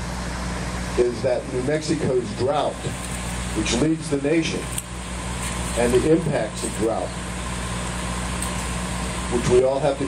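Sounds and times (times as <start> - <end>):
continuous noisy haze: 0.0 - 10.0
low mechanical hum: 0.0 - 10.0.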